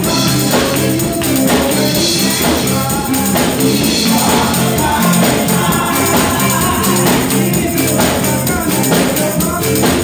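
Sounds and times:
instrumental accompaniment: 0.0 - 10.0
women singing gospel song: 0.0 - 10.0.

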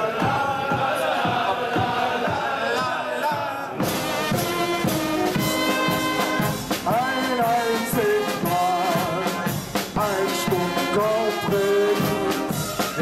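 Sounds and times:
bass drum: 3.8 - 13.0
brass band playing a march: 3.8 - 13.0
snare drum beating: 3.8 - 13.0.

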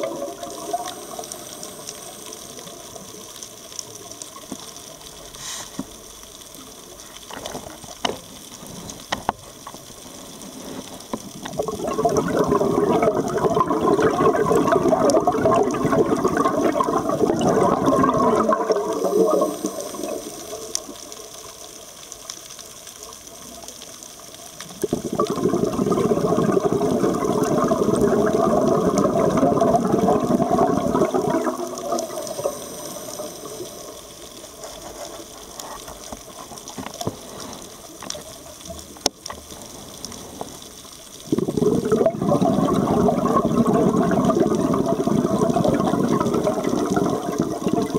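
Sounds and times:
underwater exhaled bubbles: 0.0 - 47.9
diver inhaling: 5.3 - 5.9.

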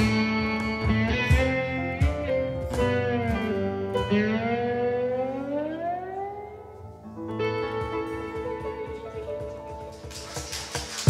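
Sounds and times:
electric guitar note gliding upward: 0.0 - 9.5.

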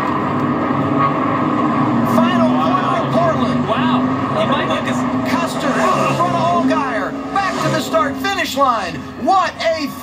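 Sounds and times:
racing car engines droning: 0.0 - 10.0.

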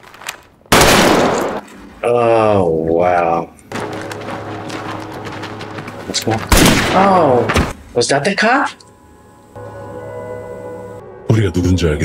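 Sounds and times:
revolver gunshot: 0.7 - 1.6, 6.5 - 7.4.

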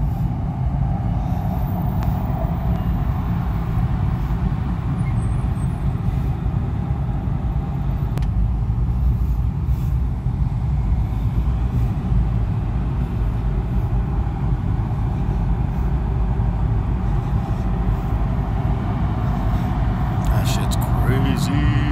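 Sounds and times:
car engine and road rumble: 0.0 - 21.9.

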